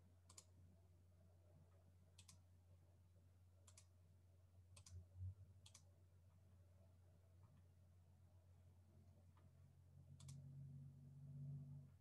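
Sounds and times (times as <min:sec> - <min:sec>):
low electrical hum: 0:00.0 - 0:12.0
computer mouse clicks: 0:00.2 - 0:00.5, 0:02.2 - 0:02.4, 0:03.6 - 0:04.0, 0:04.7 - 0:05.0, 0:05.6 - 0:05.9, 0:10.1 - 0:10.5.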